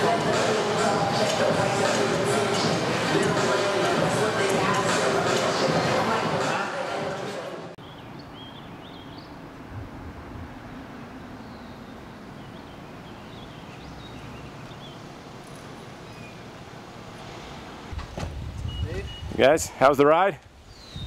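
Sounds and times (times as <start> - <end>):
faint bird chirps: 18.6 - 19.4.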